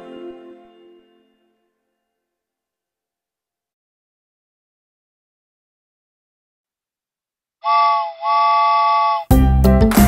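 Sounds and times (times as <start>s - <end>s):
cartoon steam train whistle toots: 7.6s - 9.3s
upbeat children's music: 9.2s - 10.0s.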